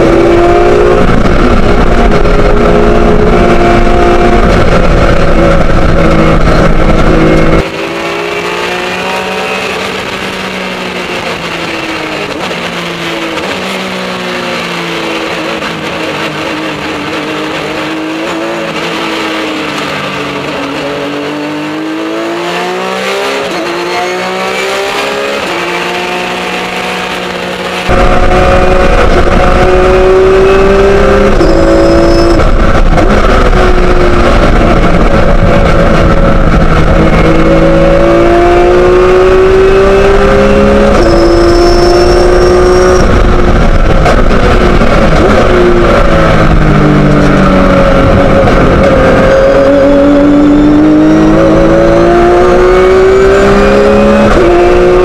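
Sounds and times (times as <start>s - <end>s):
race car engine at speed: 0.0s - 55.0s.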